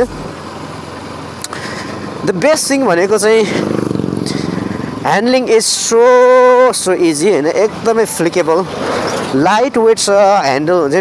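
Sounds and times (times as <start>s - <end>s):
person speaking: 0.0s - 0.3s
motorcycle engine running: 0.0s - 8.1s.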